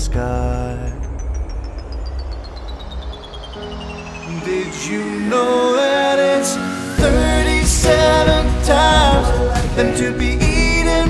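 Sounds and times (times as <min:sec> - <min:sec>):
deep rumble: 0:00.0 - 0:05.4
pulsing high tone falling in pitch: 0:00.0 - 0:08.0.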